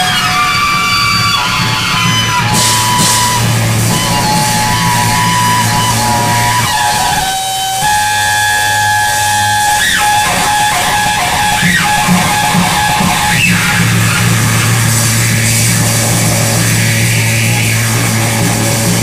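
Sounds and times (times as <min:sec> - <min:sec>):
electric guitar sustained notes: 0:00.0 - 0:19.0
live rock band playing: 0:00.0 - 0:19.0.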